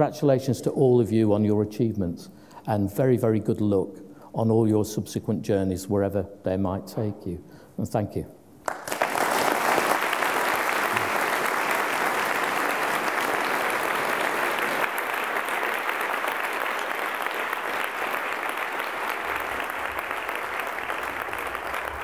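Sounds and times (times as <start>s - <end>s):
large audience applauding: 8.6s - 22.0s.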